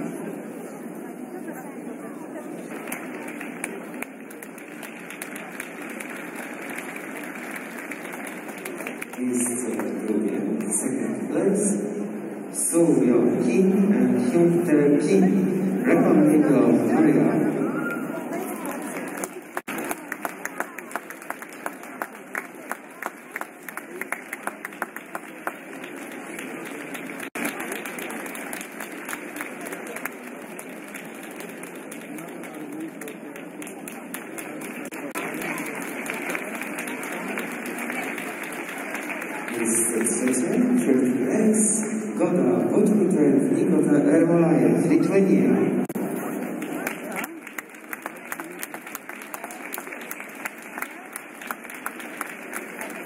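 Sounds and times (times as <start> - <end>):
audience applauding: 2.6 - 10.7, 17.7 - 41.1, 45.8 - 53.0.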